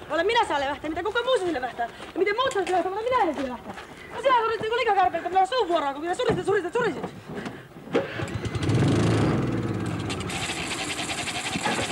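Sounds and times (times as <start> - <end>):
small engine running: 8.3 - 11.9.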